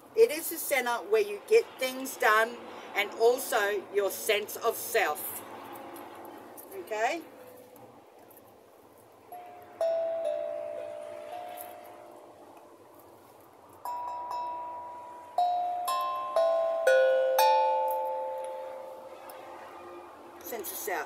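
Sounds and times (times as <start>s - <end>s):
steel tongue drum notes ringing: 9.3s - 12.4s, 13.8s - 19.4s.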